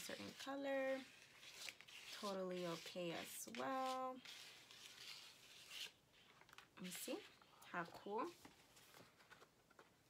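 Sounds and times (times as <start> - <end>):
paper sheet rustling: 0.0 - 10.0.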